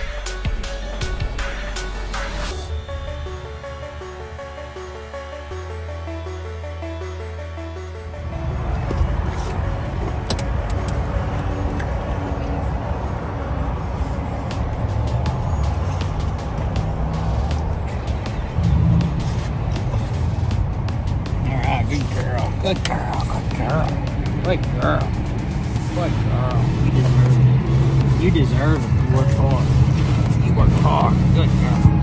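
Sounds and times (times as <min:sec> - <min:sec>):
background music: 0:00.0 - 0:32.0.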